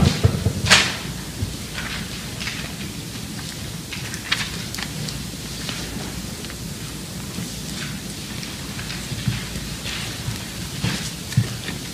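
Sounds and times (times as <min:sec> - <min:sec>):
papers rustling: 0:00.0 - 0:11.9
room hum: 0:00.0 - 0:11.9.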